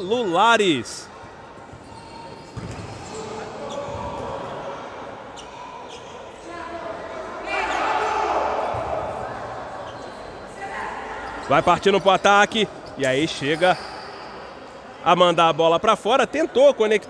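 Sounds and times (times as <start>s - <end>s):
crowd noise: 0.0s - 17.0s
players' voices: 0.0s - 17.0s.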